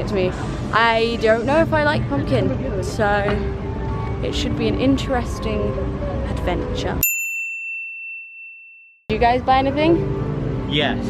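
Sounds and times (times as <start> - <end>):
high clear bell ding: 7.0 - 9.0.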